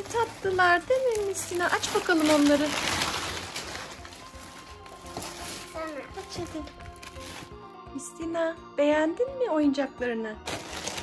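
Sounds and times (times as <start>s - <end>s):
plastic bags crinkling: 0.0s - 7.6s, 10.4s - 11.0s
background music with held tone: 0.0s - 11.0s.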